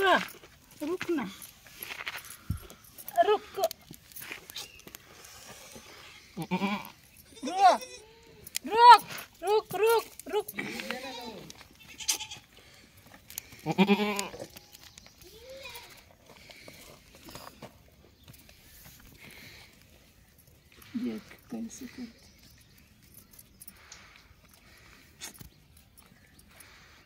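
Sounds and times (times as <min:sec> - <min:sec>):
goats bleating: 0:06.4 - 0:09.6, 0:10.5 - 0:12.6, 0:13.5 - 0:14.6.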